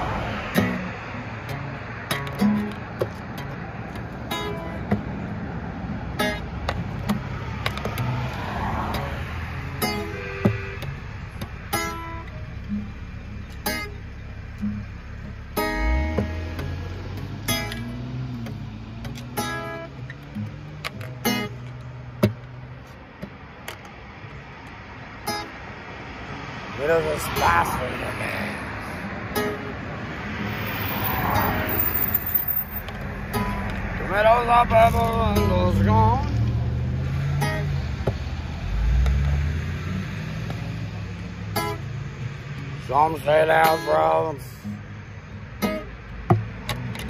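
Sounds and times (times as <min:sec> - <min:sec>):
acoustic guitar strumming: 0:00.0 - 0:24.4, 0:25.1 - 0:25.9, 0:26.8 - 0:30.7, 0:31.4 - 0:39.2, 0:40.4 - 0:47.0.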